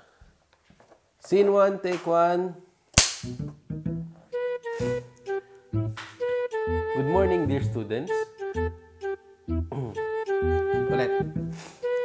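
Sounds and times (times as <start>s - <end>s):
plucked and bowed string music: 3.4s - 12.0s.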